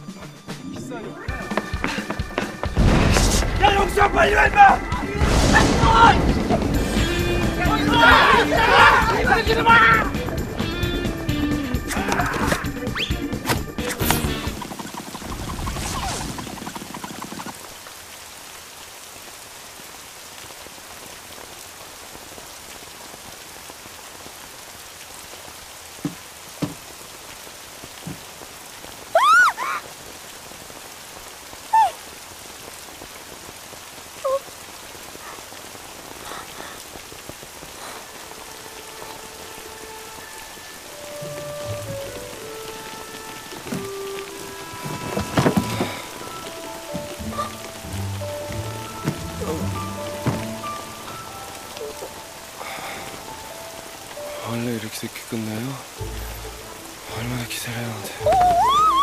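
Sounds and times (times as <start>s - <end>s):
steady rain hiss: 0.0s - 59.0s
soft music with held notes: 38.6s - 54.8s.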